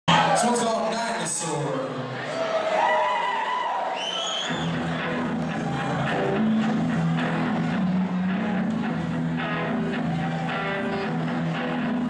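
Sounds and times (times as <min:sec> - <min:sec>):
bass guitar: 0:04.5 - 0:12.0
electric guitar: 0:04.5 - 0:12.0.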